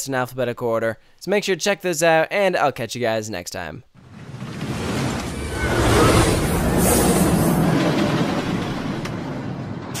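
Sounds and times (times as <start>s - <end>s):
short whoosh: 4.0s - 9.3s
rushing rumbling noise: 4.0s - 10.0s.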